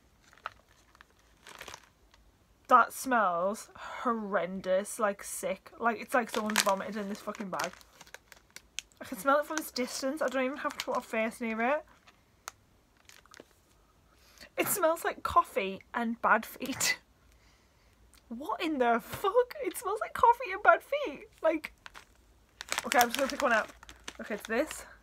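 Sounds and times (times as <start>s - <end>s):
plastic bag crinkling: 0.1s - 2.2s, 6.0s - 13.8s, 21.4s - 25.0s.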